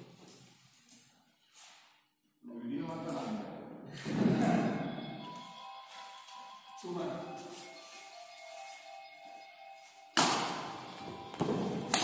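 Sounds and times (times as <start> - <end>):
faint background music: 1.8 - 12.0
racket striking shuttlecock: 10.2 - 10.8.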